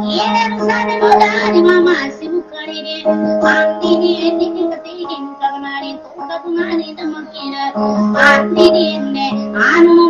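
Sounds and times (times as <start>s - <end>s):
high voice singing: 0.0s - 10.0s.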